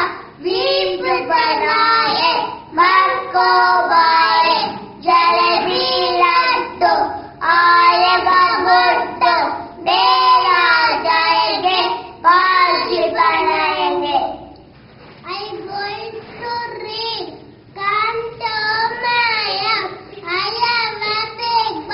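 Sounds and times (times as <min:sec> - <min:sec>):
boys singing: 0:00.0 - 0:14.3.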